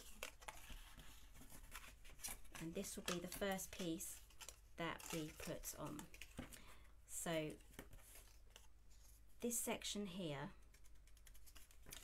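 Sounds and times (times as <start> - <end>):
cardstock rustling and folding: 0.0 - 6.8, 7.4 - 9.3, 10.6 - 12.0.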